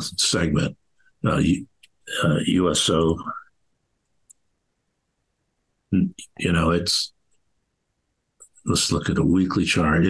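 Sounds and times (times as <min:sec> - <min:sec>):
man's voice: 0:00.0 - 0:03.4, 0:06.0 - 0:07.1, 0:08.6 - 0:10.0.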